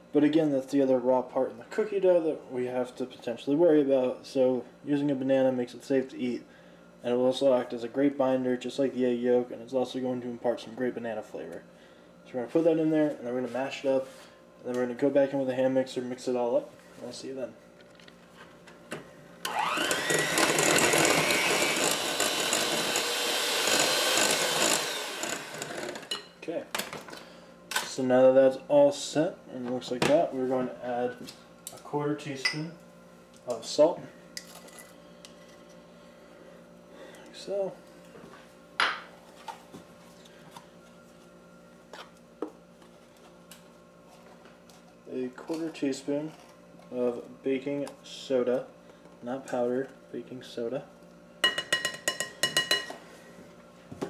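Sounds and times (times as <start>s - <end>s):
faint steady hum: 0.0s - 54.0s
electric hand mixer motor whine: 19.4s - 26.1s.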